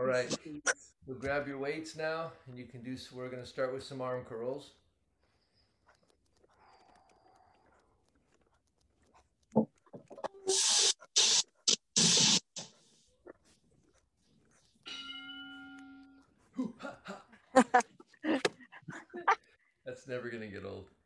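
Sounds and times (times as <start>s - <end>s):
loud bursts of hiss: 10.5s - 12.6s
boxing bell ding: 14.9s - 16.2s.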